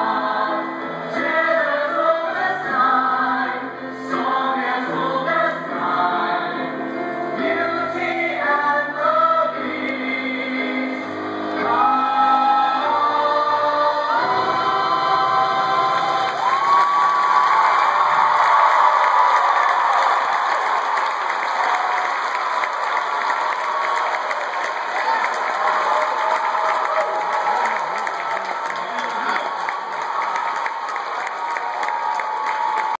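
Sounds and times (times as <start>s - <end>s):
audience applauding and cheering: 15.2s - 33.0s
whoops and shouts: 16.4s - 22.1s, 23.4s - 33.0s.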